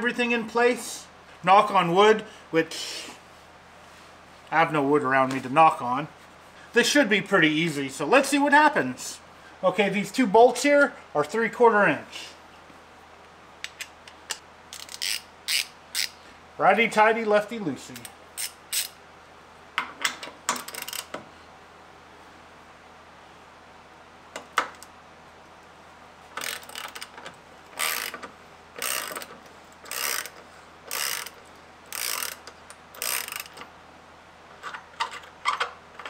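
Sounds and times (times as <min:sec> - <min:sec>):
ratchet wrench clicking: 0:13.7 - 0:16.2, 0:18.0 - 0:19.0, 0:20.5 - 0:21.2, 0:26.4 - 0:27.2, 0:27.8 - 0:33.7.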